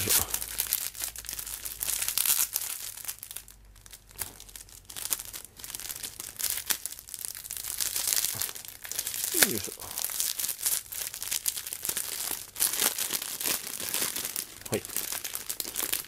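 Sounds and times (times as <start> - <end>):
plastic film crinkling and tearing: 0.0 - 16.0.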